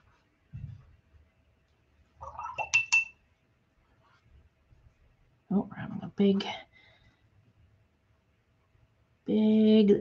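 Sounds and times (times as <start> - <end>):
paintbrush clinking on cup: 2.4 - 3.2.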